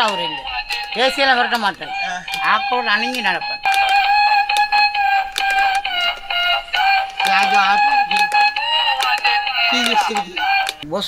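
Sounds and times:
toy electronic tune: 0.0 - 10.8
man's voice: 0.0 - 11.0.

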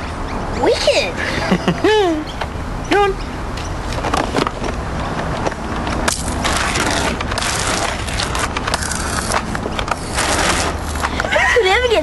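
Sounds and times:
water pistols squirting: 6.1 - 11.2.

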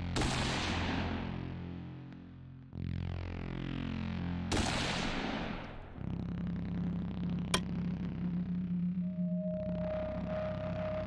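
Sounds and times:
low steady drone: 6.7 - 11.0.

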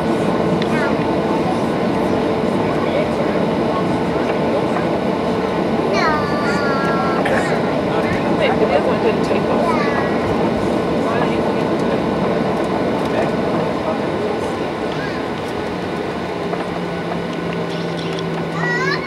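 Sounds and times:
airplane engine rumble: 0.0 - 19.0
passengers talking: 0.0 - 19.0.

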